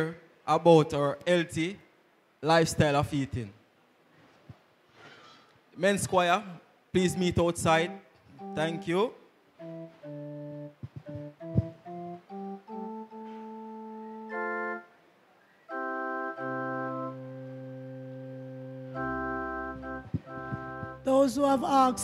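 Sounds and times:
organ playing: 7.0s - 22.0s.

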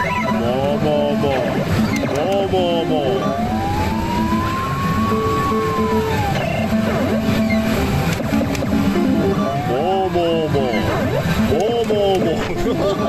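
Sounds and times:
slot parlor din: 0.0s - 3.3s
electronic warbling tone: 0.0s - 11.6s
gliding electronic tone: 0.0s - 11.6s.

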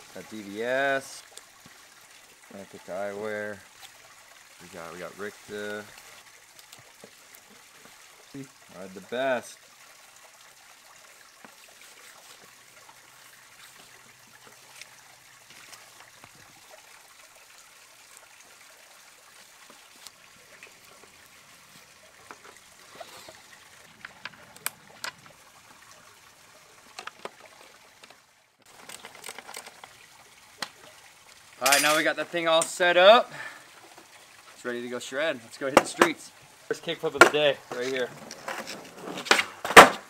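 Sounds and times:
faint steady hiss: 0.0s - 40.0s.

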